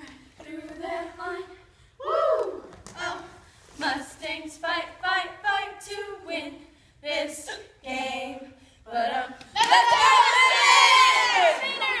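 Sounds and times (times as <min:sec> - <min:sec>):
girls yelling and cheering: 0:09.6 - 0:12.0.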